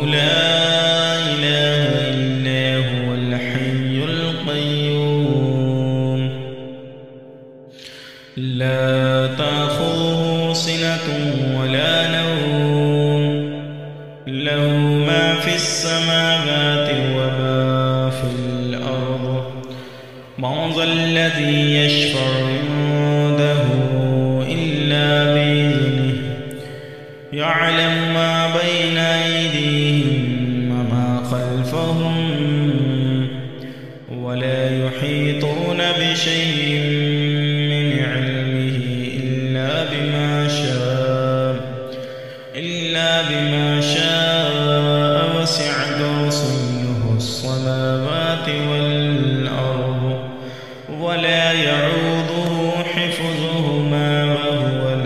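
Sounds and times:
man chanting melodically: 0.0 - 55.0.

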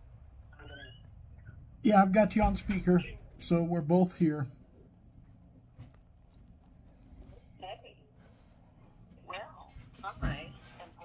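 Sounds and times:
low room hum: 0.0 - 11.0
man speaking: 1.8 - 4.6.

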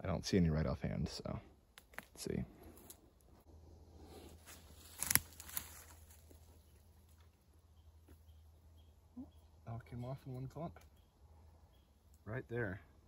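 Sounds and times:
footsteps in dry leaves: 4.0 - 7.1.

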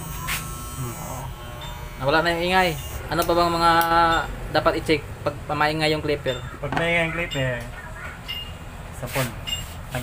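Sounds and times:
electric hair clipper buzzing: 0.0 - 4.0.

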